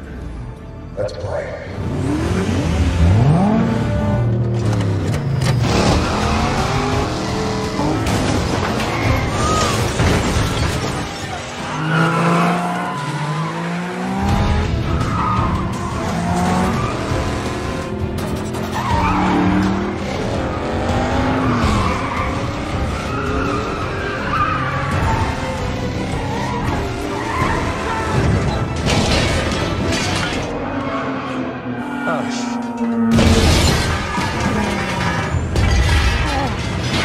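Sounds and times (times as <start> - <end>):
car engines revving: 0.1 - 37.0
orchestral action music: 5.6 - 37.0
car crashing through glass: 8.0 - 11.5, 33.1 - 37.0.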